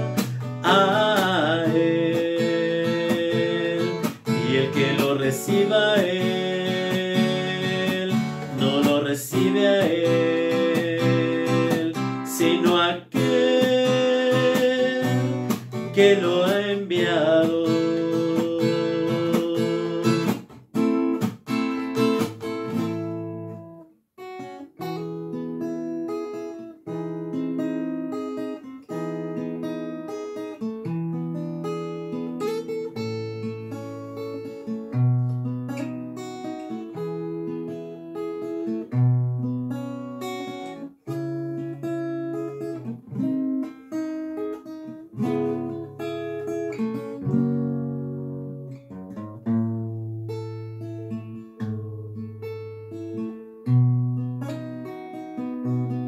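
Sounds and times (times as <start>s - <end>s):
acoustic guitar chords: 0.0s - 56.0s.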